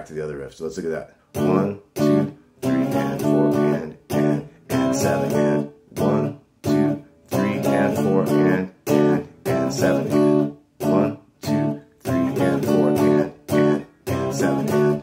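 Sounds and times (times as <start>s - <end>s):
clean electric guitar chord stabs: 1.3s - 15.0s.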